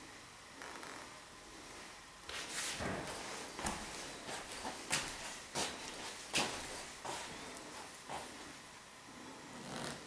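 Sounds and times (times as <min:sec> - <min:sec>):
soft footsteps on mats: 0:02.3 - 0:08.5.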